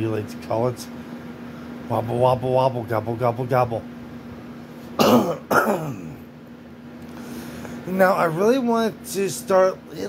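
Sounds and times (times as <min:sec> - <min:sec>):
man clearing his throat: 0:05.0 - 0:06.3.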